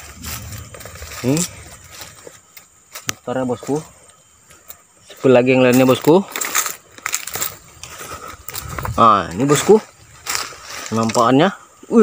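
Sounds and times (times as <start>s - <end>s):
low rumble: 0.0s - 2.4s
footsteps crunching on dry leaves: 0.0s - 11.6s.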